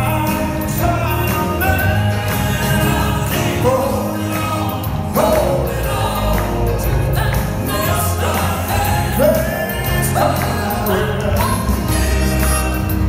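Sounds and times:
amplified instrumental accompaniment: 0:00.0 - 0:13.0
male quartet singing in harmony: 0:00.0 - 0:13.0.

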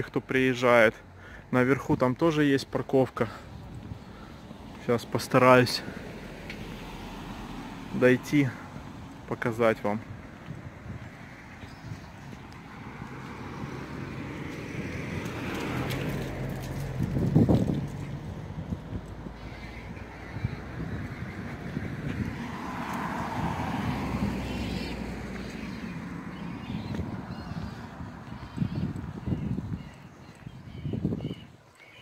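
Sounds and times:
cars passing on road: 0:00.0 - 0:32.0.

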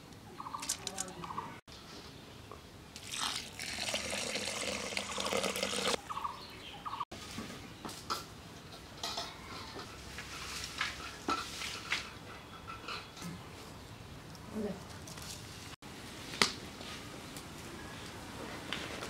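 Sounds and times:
water pouring into a pan: 0:03.0 - 0:06.0.

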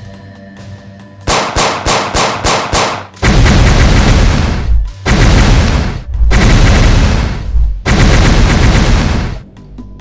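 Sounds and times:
pistol gunshots: 0:01.3 - 0:09.4.

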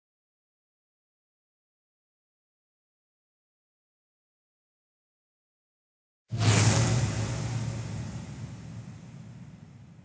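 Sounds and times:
low rumble: 0:06.3 - 0:10.0
whoosh: 0:06.3 - 0:10.0.

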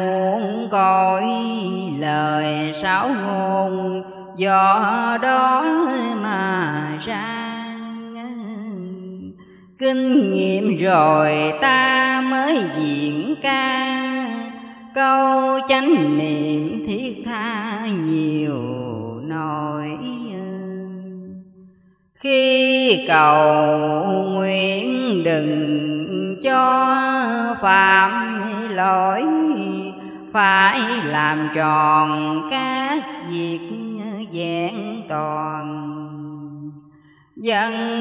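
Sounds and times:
woman chanting: 0:00.0 - 0:38.0.

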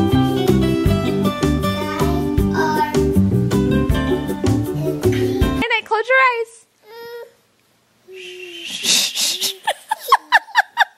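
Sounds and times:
baby vocalizing: 0:08.1 - 0:09.7.

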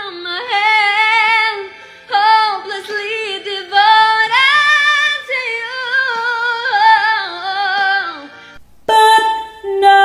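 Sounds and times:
woman singing slow melody: 0:00.0 - 0:10.0.

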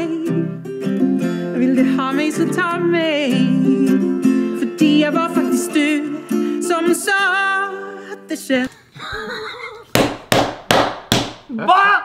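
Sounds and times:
man laughing loudly: 0:09.0 - 0:09.9
sharp hand slaps: 0:10.0 - 0:11.5.

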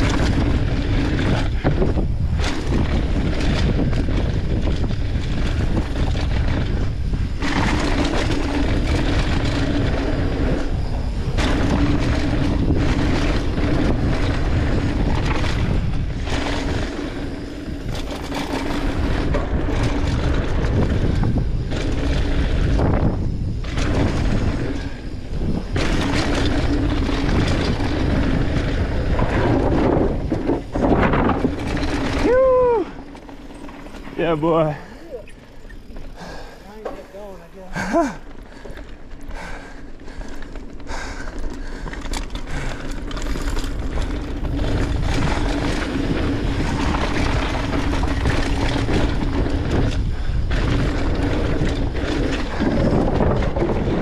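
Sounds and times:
bike tyre roar and rattle: 0:00.0 - 0:54.0
wind buffeting microphone: 0:00.0 - 0:54.0
rider whooping: 0:31.9 - 0:33.3, 0:36.2 - 0:38.6.

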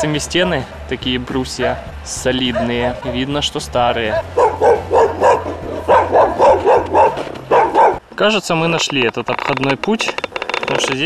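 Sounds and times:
dog barking: 0:02.5 - 0:03.2, 0:04.1 - 0:08.0.

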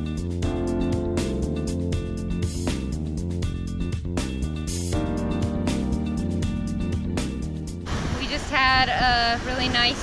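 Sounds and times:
wind noise on microphone: 0:07.6 - 0:10.0
woman talking: 0:08.2 - 0:10.0.

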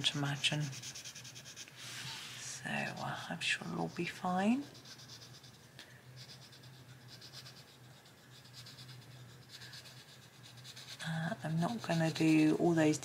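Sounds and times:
pencil scratching on paper: 0:00.0 - 0:13.0.

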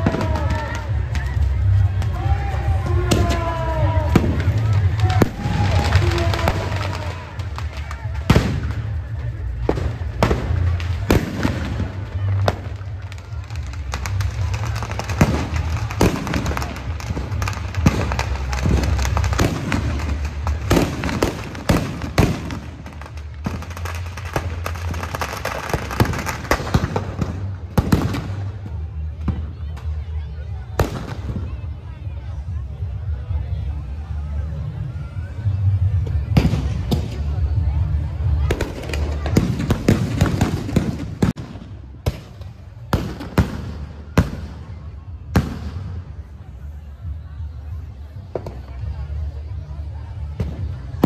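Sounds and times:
firecrackers bursting: 0:00.0 - 0:51.0.

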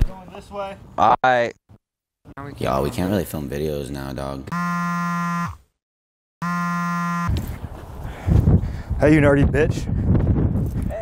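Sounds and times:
low buzzer tone: 0:04.5 - 0:05.6, 0:06.4 - 0:07.3.

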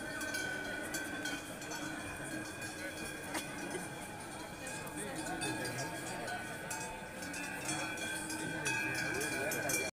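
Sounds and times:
cowbells ringing: 0:00.0 - 0:09.9
crowd murmuring: 0:00.0 - 0:09.9.

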